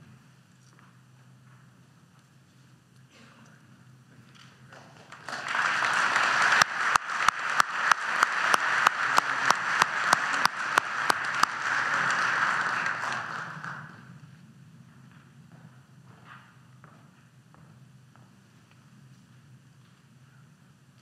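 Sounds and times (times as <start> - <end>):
audience applause: 4.7 - 14.1
person clapping close to microphone: 5.0 - 14.0.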